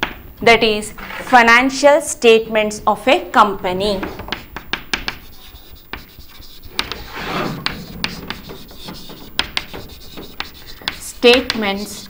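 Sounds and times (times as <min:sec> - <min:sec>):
chalk scratching on chalkboard: 0:04.0 - 0:12.0
chalk tapping on board: 0:04.0 - 0:12.0.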